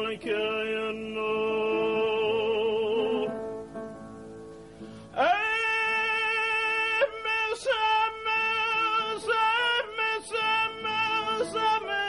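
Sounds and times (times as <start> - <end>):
male cantor singing: 0.0 - 3.5, 5.2 - 12.0.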